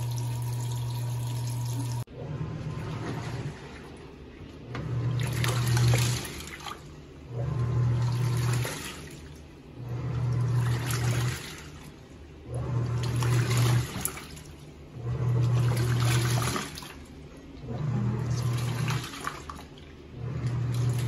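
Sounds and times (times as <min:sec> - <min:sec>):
washing machine motor humming: 0:00.0 - 0:21.0
water sloshing: 0:02.6 - 0:21.0.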